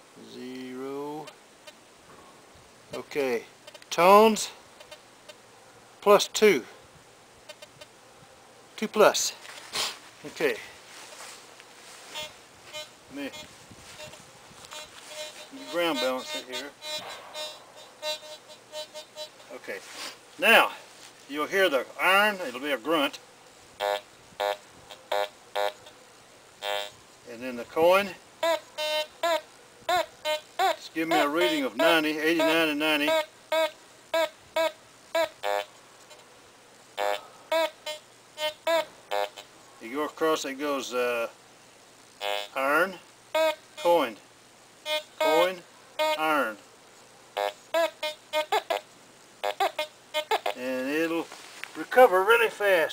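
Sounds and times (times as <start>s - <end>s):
metal detector low buzzy grunts: 15.2s - 18.3s
metal detector beeps: 44.9s - 45.4s
metal detector high beeps: 44.9s - 46.3s.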